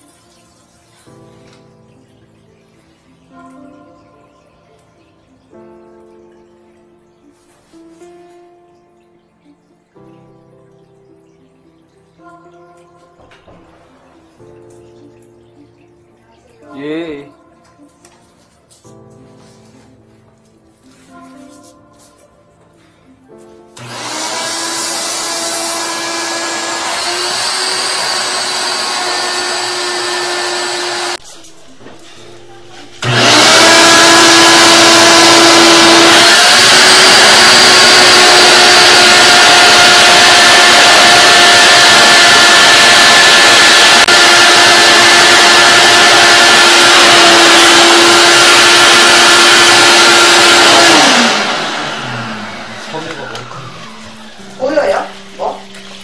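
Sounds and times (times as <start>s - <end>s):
shop vacuum running: 23.8s - 56.0s.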